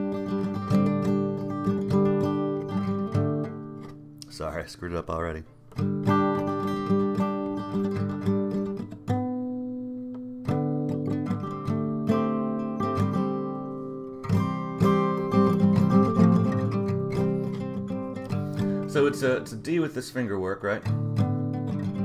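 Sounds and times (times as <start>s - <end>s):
fingerpicked acoustic guitar: 0.0s - 22.0s.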